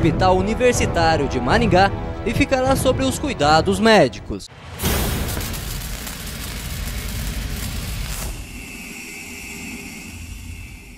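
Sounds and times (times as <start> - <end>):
steady high whine: 5.4 - 10.9.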